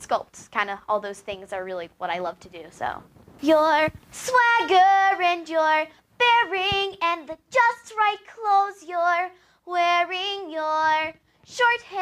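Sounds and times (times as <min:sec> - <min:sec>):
girl singing solo: 0:03.4 - 0:12.0.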